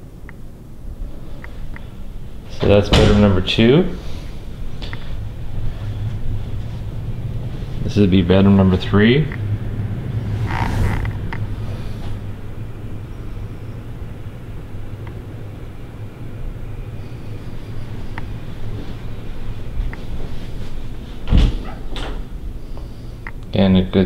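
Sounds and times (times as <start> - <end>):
low room hum: 0.0 - 24.0
closet door opening: 2.6 - 3.4, 19.9 - 22.6.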